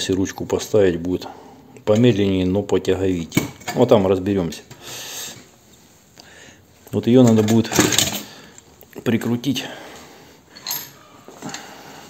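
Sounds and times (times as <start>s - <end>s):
metal parts clinking: 7.2s - 8.3s, 10.5s - 11.6s.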